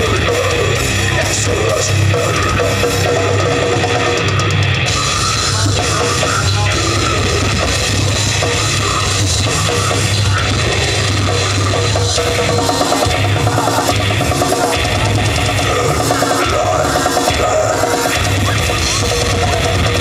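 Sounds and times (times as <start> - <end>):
death metal band playing live: 0.0 - 20.0.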